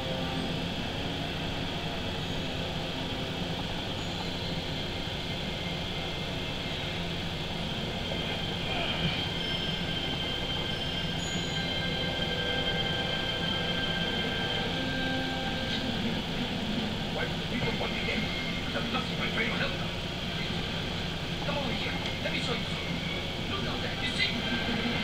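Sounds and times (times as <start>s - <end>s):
faint voices: 0.0s - 25.0s
steady background hum: 0.0s - 25.0s
thin high whining tones: 0.0s - 25.0s.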